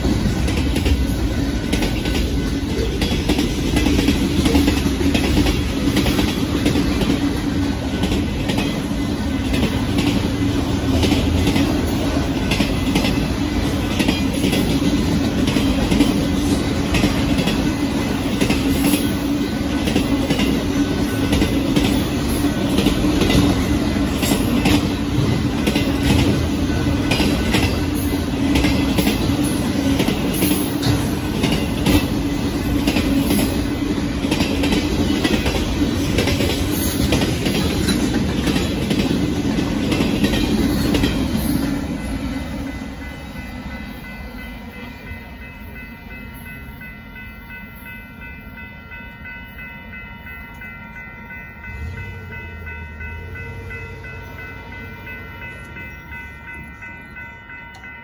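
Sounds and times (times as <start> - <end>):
wheels clicking over rail joints: 0.0 - 41.8
train wheels rumbling on rails: 0.0 - 58.0.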